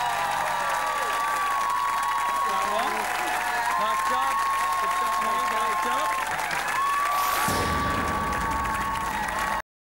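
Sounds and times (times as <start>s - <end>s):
audience applauding and cheering: 0.0s - 9.6s.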